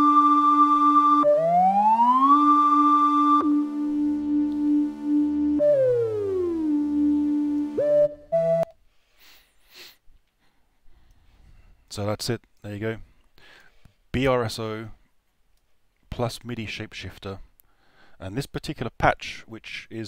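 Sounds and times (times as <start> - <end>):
synthesizer lead with pitch slides: 0.0 - 8.7.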